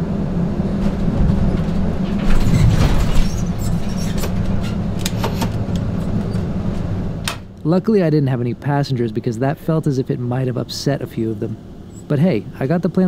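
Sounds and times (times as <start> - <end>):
low engine hum: 0.0 - 13.0
knocks and rattles: 0.8 - 7.4.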